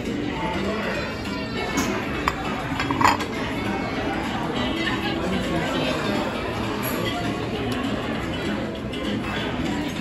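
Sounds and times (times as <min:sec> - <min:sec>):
continuous chatter: 0:00.0 - 0:10.0
metal and dishes clinking: 0:01.6 - 0:03.7.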